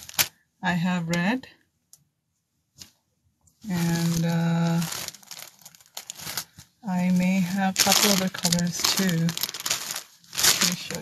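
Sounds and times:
cloth rustling: 3.6 - 11.0.

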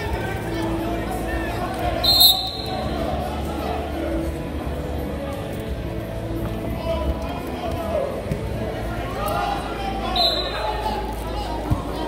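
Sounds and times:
voices and chatter: 0.0 - 12.0
referee's whistle blast: 2.0 - 3.0, 10.1 - 10.6.

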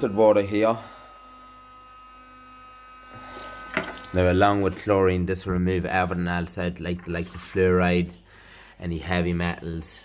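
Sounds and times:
faint electrical hum: 0.0 - 10.0
water running into glass jar: 3.2 - 4.9.

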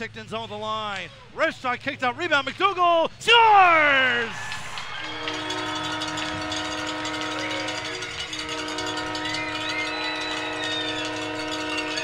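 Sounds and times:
crowd noise: 3.4 - 12.0
goal horn blaring: 5.0 - 12.0.

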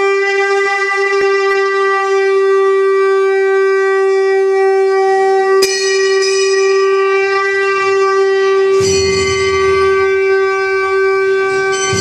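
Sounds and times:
wind instrument long steady note: 0.0 - 12.0.

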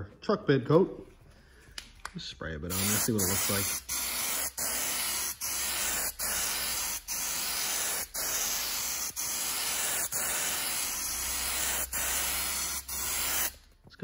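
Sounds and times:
aerosol can spraying: 2.7 - 13.6.

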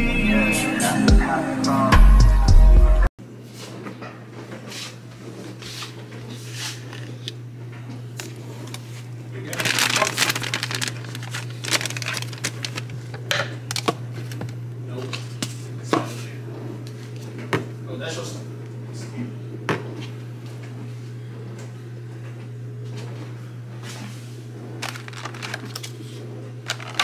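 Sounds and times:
foil and plastic bags crinkling: 8.5 - 14.6, 24.8 - 27.0.

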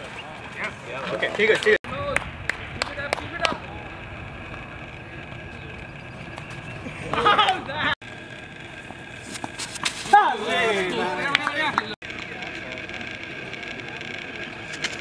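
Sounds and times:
players shouting: 1.8 - 8.0, 10.0 - 12.0.

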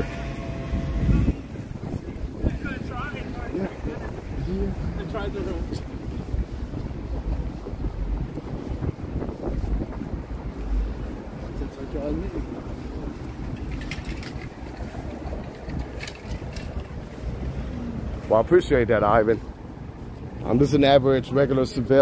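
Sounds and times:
low rumble of traffic: 0.0 - 22.0
voices of passers-by: 0.0 - 22.0
wind buffeting microphone: 0.0 - 22.0.

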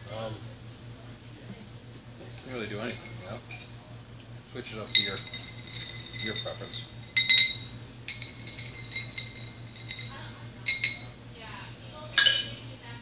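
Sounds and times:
spoon clinking against glass: 4.8 - 11.2, 12.2 - 12.6.

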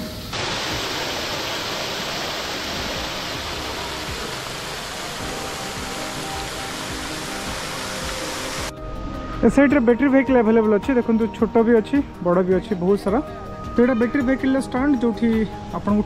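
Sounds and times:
fountain water splashing: 0.0 - 8.7.

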